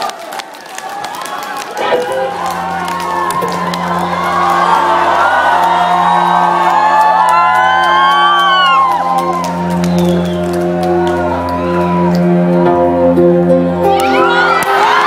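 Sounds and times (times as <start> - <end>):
people clapping: 0.0 - 12.7, 14.0 - 15.0
audience screaming and whooping: 0.0 - 15.0
live band sustained chord: 1.8 - 14.1.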